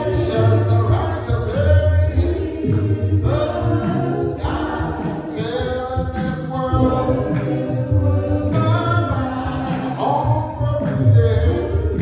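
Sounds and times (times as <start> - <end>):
gospel group singing in harmony: 0.0 - 12.0.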